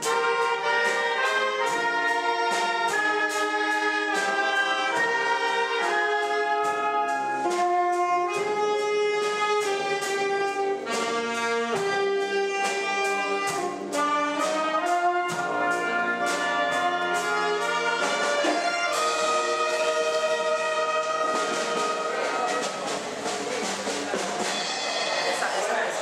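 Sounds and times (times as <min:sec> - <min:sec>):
wind band playing: 0:00.0 - 0:26.0.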